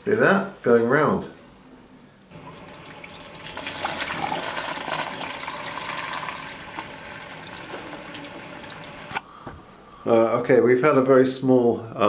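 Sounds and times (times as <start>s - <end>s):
water pouring and splashing: 2.3s - 9.2s.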